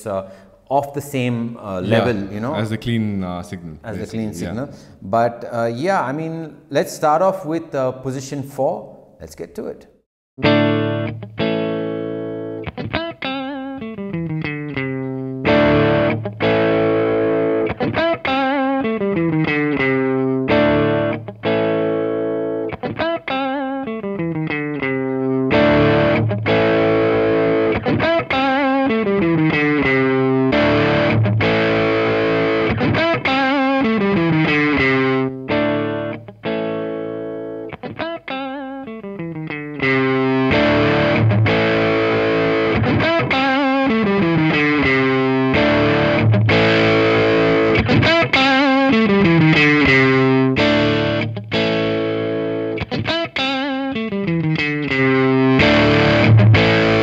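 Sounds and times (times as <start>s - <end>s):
distorted electric guitar riff: 10.4s - 57.0s.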